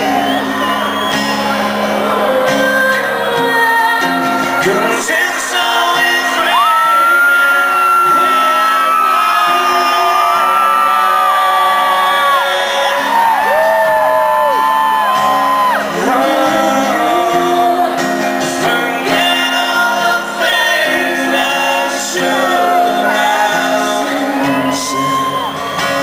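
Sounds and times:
crowd whooping: 0.0 - 26.0
strummed acoustic guitar: 0.0 - 26.0.

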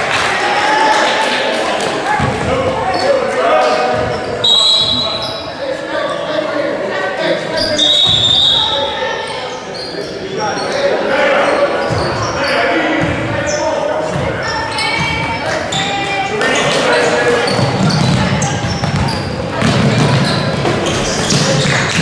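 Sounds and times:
sneakers squeaking: 2.2 - 5.6, 7.5 - 22.0
basketball bouncing: 17.5 - 22.0.

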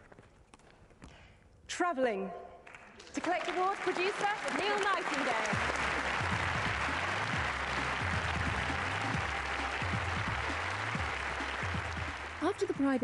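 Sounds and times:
audience applauding: 2.7 - 13.0
music with repeating bass line: 5.6 - 13.0.

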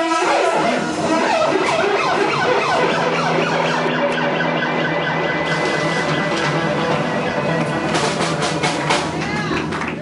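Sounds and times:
siren-like pitch glide: 0.0 - 7.5
live band playing: 0.0 - 10.0.

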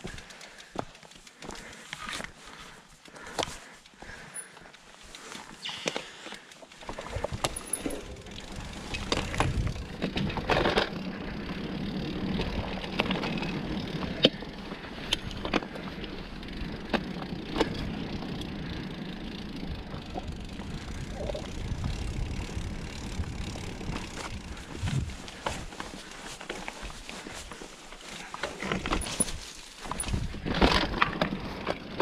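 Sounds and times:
bike clicks and knocks: 0.0 - 32.0
bike tyres rolling on dirt: 0.0 - 32.0.

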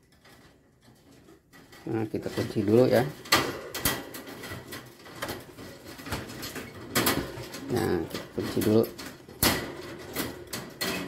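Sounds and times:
wire cage door rattling: 0.0 - 11.0.

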